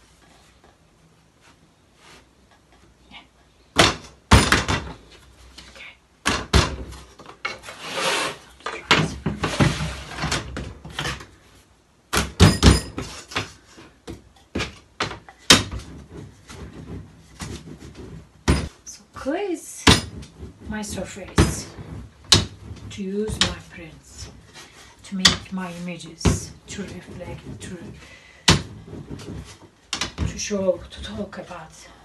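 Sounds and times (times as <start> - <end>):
knocks and thumps on a board: 3.8 - 5.0, 6.2 - 7.3, 12.1 - 18.7, 26.2 - 30.5
scraping and rustling: 6.8 - 11.8, 12.9 - 32.0.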